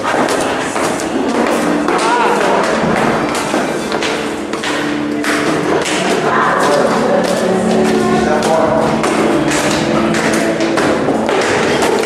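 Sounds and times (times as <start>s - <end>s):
low music or voices: 0.0s - 12.0s.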